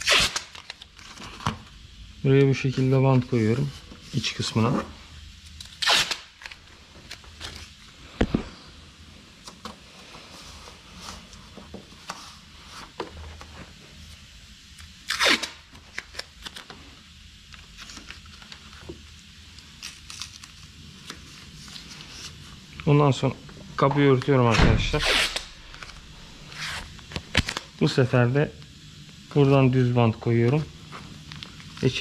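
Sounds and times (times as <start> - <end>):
masking tape ripping: 0.0 - 1.2, 5.6 - 7.8, 15.0 - 16.7, 19.8 - 21.2, 24.6 - 27.7
tape and paper handling: 0.0 - 1.8, 2.6 - 8.3, 14.8 - 16.9, 17.5 - 22.9, 24.0 - 27.7
low thud: 24.5 - 25.0.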